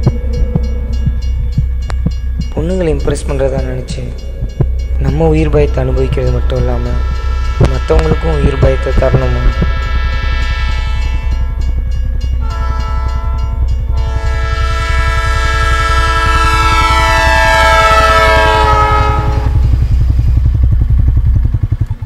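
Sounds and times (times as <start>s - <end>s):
train rumble and wheel clatter: 0.0s - 22.0s
train horn blasts: 3.2s - 20.7s.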